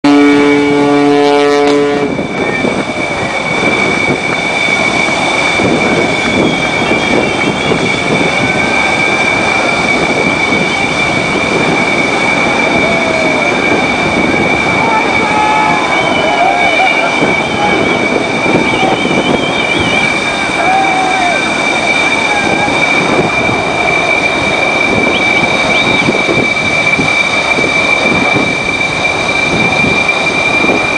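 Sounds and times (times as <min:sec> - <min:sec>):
rush of wind and sea: 0:00.0 - 0:30.9
high-pitched whine: 0:00.1 - 0:30.9.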